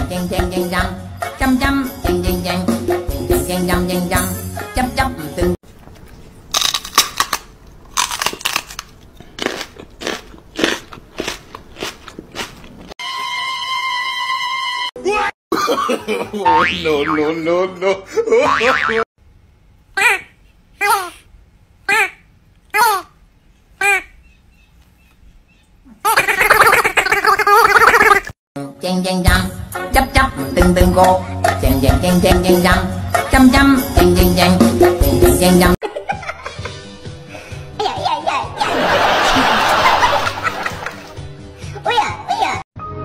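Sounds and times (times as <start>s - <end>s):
cat chewing with loud crunches: 6.5s - 13.0s.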